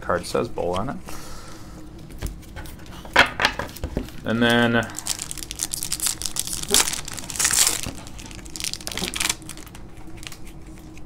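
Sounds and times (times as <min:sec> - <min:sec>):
cards and foil wrapper handled: 0:03.7 - 0:11.0.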